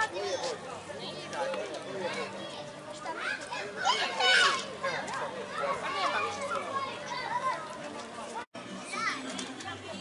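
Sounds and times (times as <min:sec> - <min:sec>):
crowd of adults and children talking: 0:00.0 - 0:10.0.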